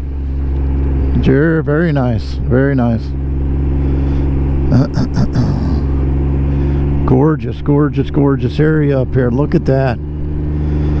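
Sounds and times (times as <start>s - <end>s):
motorcycle engine running: 0.0s - 11.0s
person coughing: 4.7s - 5.9s.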